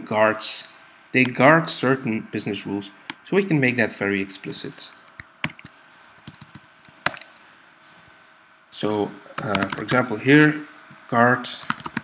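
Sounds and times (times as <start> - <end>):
keyboard keystrokes: 5.1 - 7.3, 9.4 - 9.9, 11.6 - 12.0.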